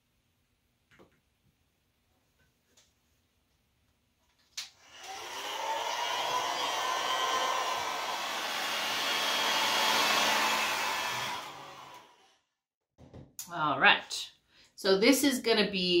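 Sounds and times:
hair dryer blowing: 0:04.8 - 0:12.3.

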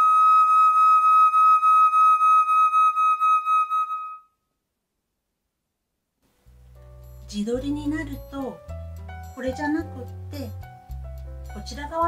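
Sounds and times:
flute long high note: 0:00.0 - 0:04.3.

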